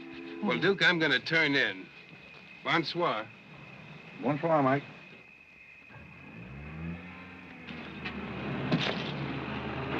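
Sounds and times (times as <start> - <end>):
car engines approaching: 5.9 - 9.9.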